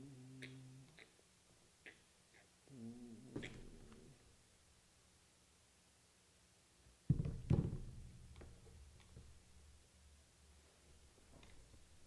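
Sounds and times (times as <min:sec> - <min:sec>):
man humming low: 0:00.0 - 0:01.0, 0:02.7 - 0:04.2.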